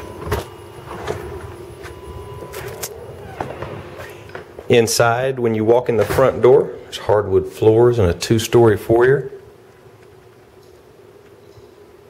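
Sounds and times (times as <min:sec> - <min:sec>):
steady background hum: 0:00.0 - 0:12.0.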